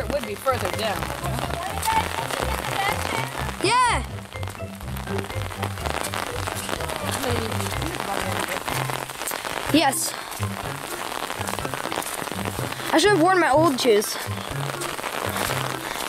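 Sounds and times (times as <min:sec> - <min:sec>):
rain pattering on umbrella: 0:00.0 - 0:16.0.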